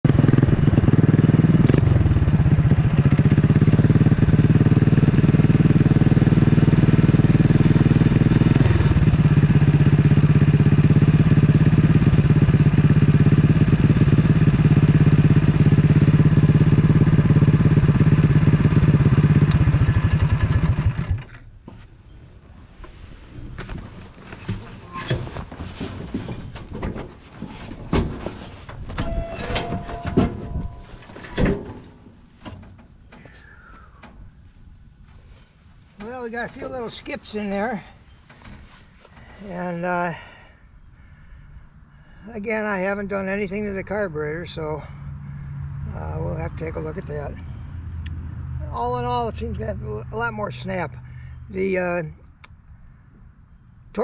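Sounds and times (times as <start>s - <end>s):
small petrol engine running: 0.1s - 21.4s.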